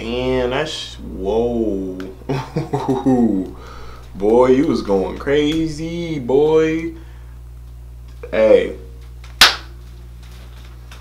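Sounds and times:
low hum: 0.0s - 9.2s
hands smacking: 9.4s - 9.7s.

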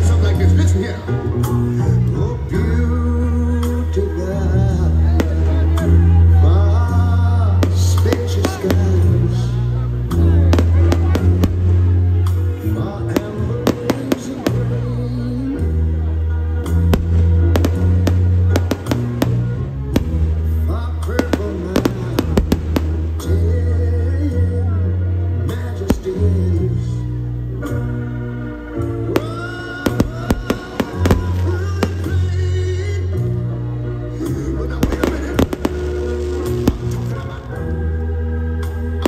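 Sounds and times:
background music with bass line: 0.0s - 39.0s
fireworks bangs and crackles: 5.2s - 5.9s, 7.5s - 9.6s, 10.2s - 15.2s, 16.6s - 23.8s, 25.8s - 26.4s, 29.1s - 32.5s, 34.2s - 37.7s.

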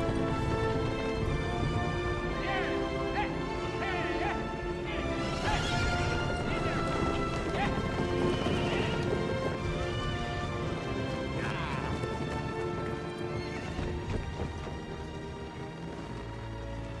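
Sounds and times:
film score music: 0.0s - 17.0s
horses galloping hooves: 0.0s - 17.0s
horses whinnying: 2.3s - 14.1s.

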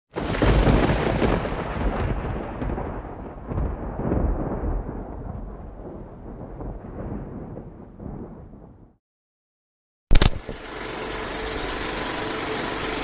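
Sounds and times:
thunder clap and rumble: 0.2s - 9.0s.

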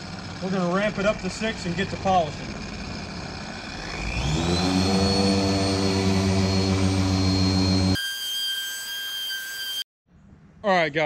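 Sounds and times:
polisher motor whine: 2.0s - 9.8s.

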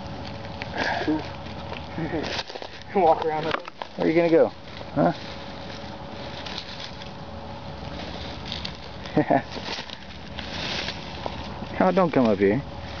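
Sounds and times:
thin constant hum: 0.0s - 13.0s
light rustling: 0.2s - 13.0s.

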